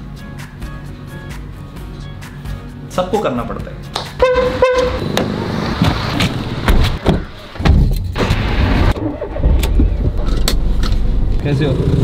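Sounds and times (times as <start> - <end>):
car engine starting and idling: 4.3 - 12.0.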